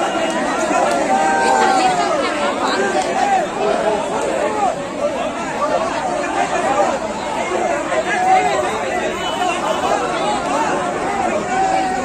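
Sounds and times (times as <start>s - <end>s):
crowd calling out and talking: 0.0s - 12.0s.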